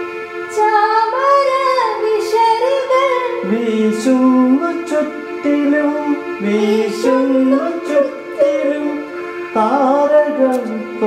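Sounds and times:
woman singing: 0:00.5 - 0:03.8, 0:06.4 - 0:08.9.

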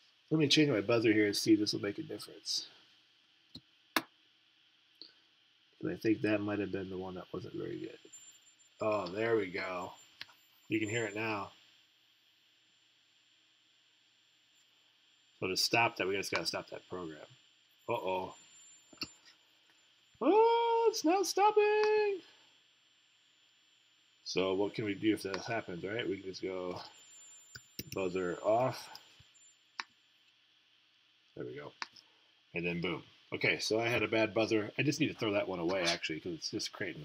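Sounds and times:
thin high hiss: 0:05.1 - 0:30.4, 0:31.2 - 0:37.0
high-pitched buzzer tone: 0:15.4 - 0:19.5.

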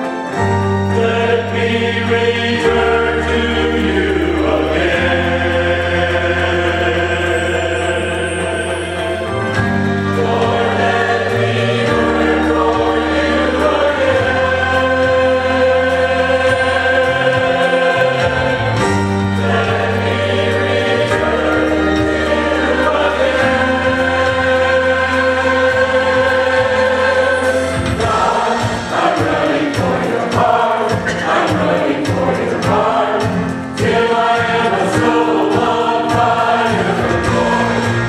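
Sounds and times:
choir singing gospel song: 0:00.0 - 0:38.0.

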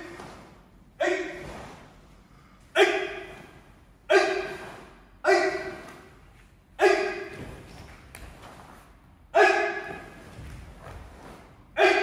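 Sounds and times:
loud shouted calls in a hall: 0:00.9 - 0:01.7, 0:02.6 - 0:07.7, 0:09.2 - 0:10.4, 0:11.7 - 0:12.0.

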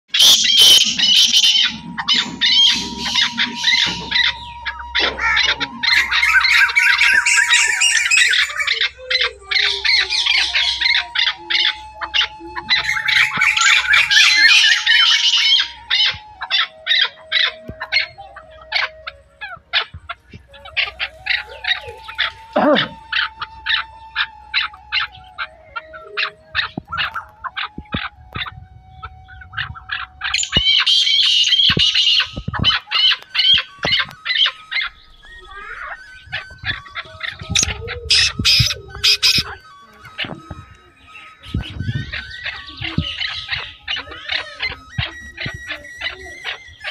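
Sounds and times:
birds calling and chirping: 0:00.1 - 0:46.9.

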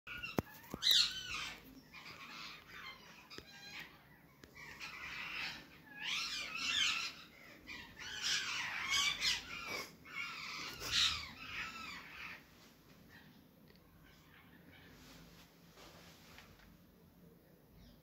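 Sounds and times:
parakeets squawking: 0:00.1 - 0:12.5, 0:13.1 - 0:15.0.

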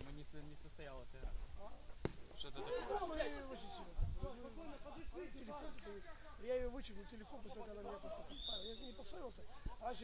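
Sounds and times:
men calling out: 0:02.5 - 0:10.0.

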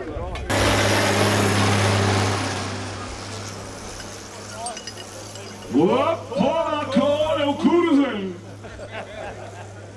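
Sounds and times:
tractor diesel engine driving past: 0:00.5 - 0:04.6.

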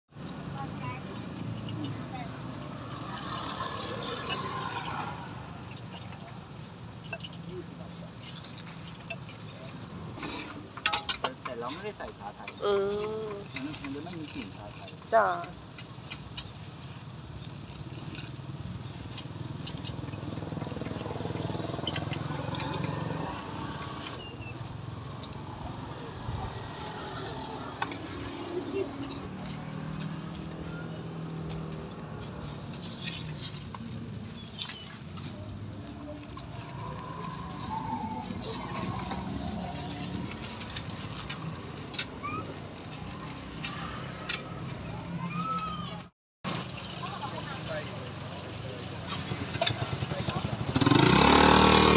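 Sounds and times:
outdoor background noise: 0:00.1 - 0:51.9
distant voices: 0:19.4 - 0:46.0.

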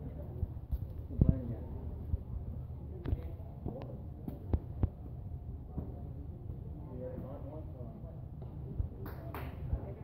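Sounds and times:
steady low rumble: 0:00.0 - 0:09.0.

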